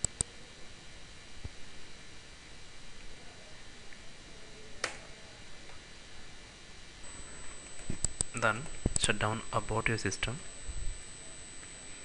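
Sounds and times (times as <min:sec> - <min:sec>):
computer click: 0:00.0 - 0:00.3, 0:07.7 - 0:09.1
faint steady hiss: 0:00.0 - 0:12.0.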